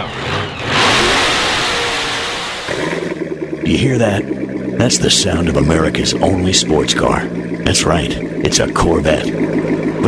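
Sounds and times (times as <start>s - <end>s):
sports car engine revving: 0.0s - 10.0s.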